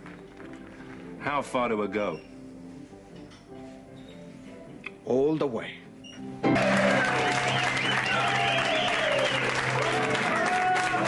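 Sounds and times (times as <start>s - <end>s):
stage music: 6.1s - 11.0s
audience clapping and cheering: 6.4s - 11.0s.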